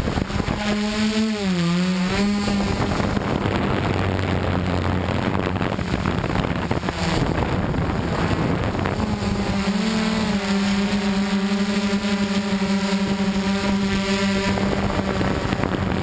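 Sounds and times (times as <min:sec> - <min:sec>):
drone motors and propellers droning: 0:00.0 - 0:16.0
wind rushing over microphone: 0:00.0 - 0:16.0.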